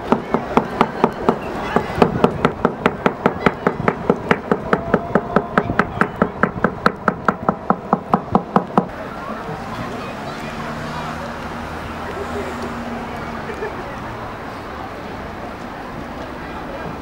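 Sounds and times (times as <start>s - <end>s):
rapid wooden knocking: 0.0s - 8.9s.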